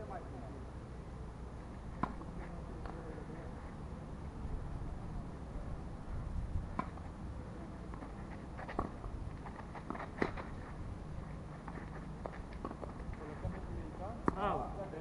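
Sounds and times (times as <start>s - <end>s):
tennis ball struck by rackets: 2.0s - 3.0s, 6.7s - 7.0s, 8.6s - 9.0s, 9.8s - 10.5s, 14.2s - 14.6s
wind rumble on microphone: 4.3s - 7.4s.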